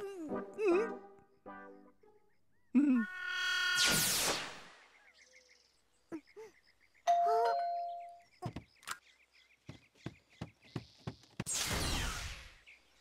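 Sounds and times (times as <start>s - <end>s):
faint birdsong: 1.2s - 3.8s, 4.6s - 13.0s
cartoon doorbell chime: 7.1s - 8.2s
light quick footsteps: 9.6s - 11.5s.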